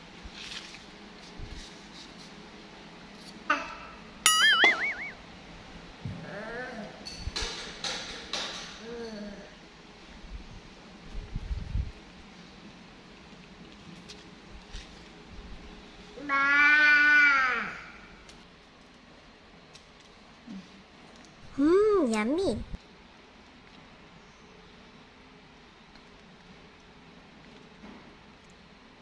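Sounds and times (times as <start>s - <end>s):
cartoon boing spring twang: 4.3s - 5.2s.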